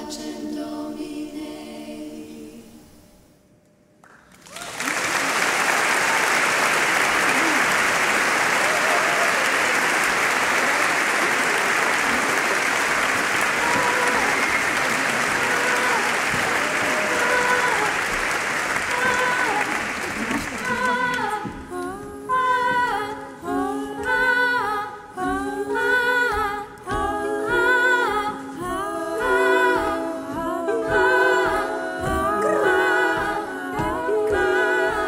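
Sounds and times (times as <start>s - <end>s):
voices singing: 0.0s - 3.0s, 6.3s - 35.0s
audience applauding: 4.0s - 21.5s.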